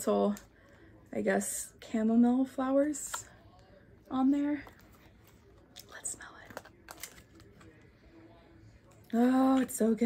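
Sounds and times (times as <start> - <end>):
plastic packaging handling: 4.6 - 7.8.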